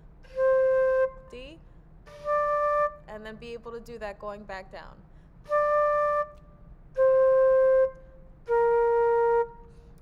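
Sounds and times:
flute playing held notes: 0.2s - 1.5s, 2.1s - 3.1s, 5.5s - 10.0s.

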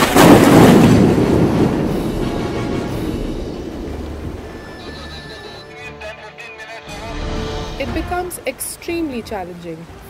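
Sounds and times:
loud boom rumbling: 0.0s - 5.1s.

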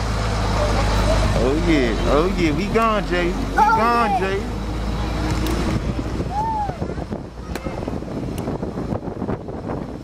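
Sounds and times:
wind buffeting microphone: 1.1s - 10.0s.

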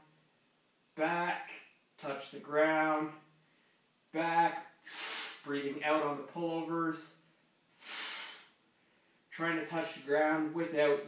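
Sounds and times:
hissing exhale: 4.8s - 5.5s, 7.8s - 8.6s.

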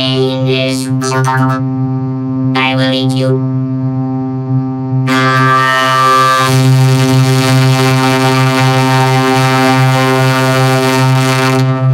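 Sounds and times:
distorted electronic drone: 0.0s - 11.9s.

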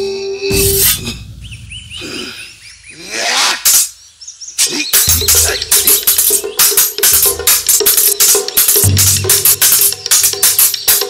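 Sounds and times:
small birds chirping: 1.4s - 11.0s.

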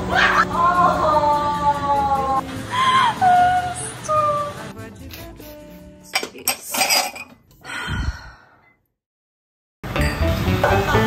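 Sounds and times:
faint background music: 0.0s - 7.2s
wine glasses clinking: 6.1s - 7.4s.

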